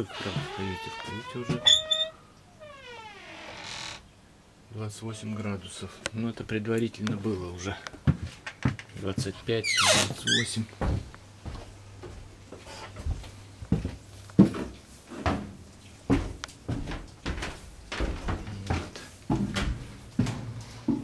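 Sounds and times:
footsteps on wooden stairs: 7.9s - 21.0s.

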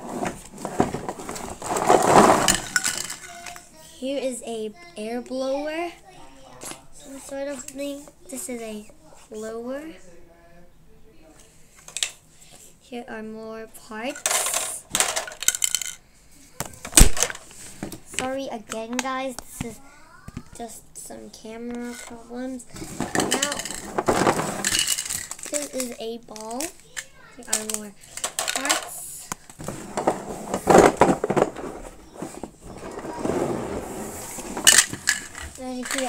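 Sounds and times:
plastic pipes clattering on floor: 0.0s - 3.6s, 14.1s - 16.0s, 16.6s - 19.1s, 21.7s - 36.0s
rustling: 0.0s - 3.7s, 21.8s - 36.0s
plastic toy pieces rattling and knocking: 0.2s - 3.7s, 14.1s - 16.0s, 16.6s - 19.1s, 21.7s - 36.0s.

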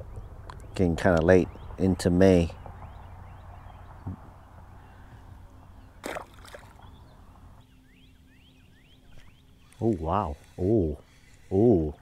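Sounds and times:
small birds chirping faintly: 0.0s - 12.0s.

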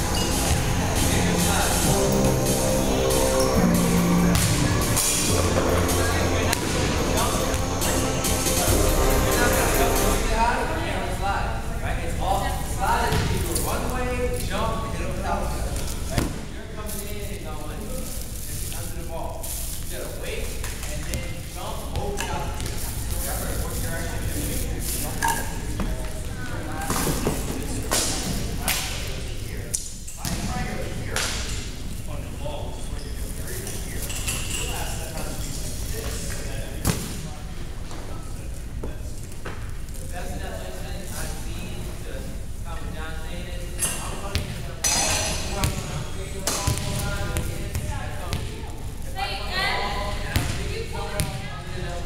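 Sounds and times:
indistinct voices: 0.0s - 19.0s
voices chattering in a gym: 0.0s - 52.0s.

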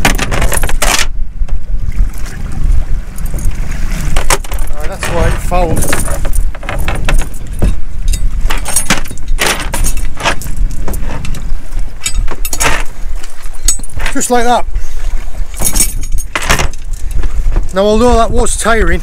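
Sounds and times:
anchor chain rattling: 0.0s - 1.2s, 3.1s - 19.0s
wind rumble on microphone: 0.0s - 19.0s.

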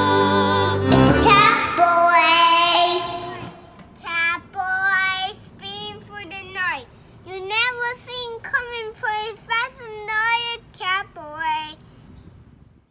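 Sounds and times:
held sung note with vibrato: 0.0s - 3.7s
song accompaniment: 0.0s - 3.7s
young child singing: 0.9s - 11.8s.

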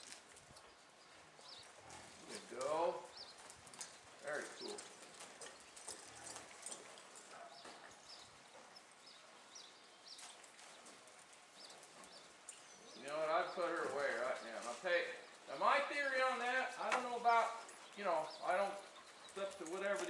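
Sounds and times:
hoofbeats on dirt: 0.0s - 20.0s.

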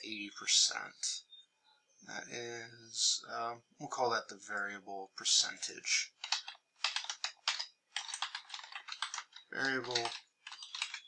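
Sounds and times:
typing on computer keyboard: 6.2s - 11.0s.

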